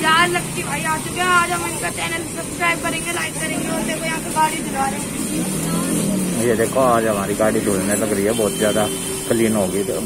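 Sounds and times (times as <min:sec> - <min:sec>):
boy speaking: 0:00.0 - 0:05.0
small vehicle engine humming: 0:00.0 - 0:10.0.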